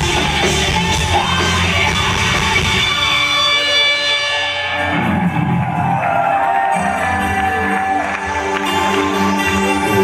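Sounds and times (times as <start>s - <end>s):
live metal band playing: 0.0s - 10.0s.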